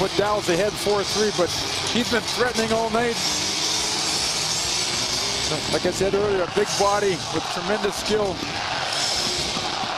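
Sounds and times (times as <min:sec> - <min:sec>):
arena crowd voices: 0:05.5 - 0:09.9.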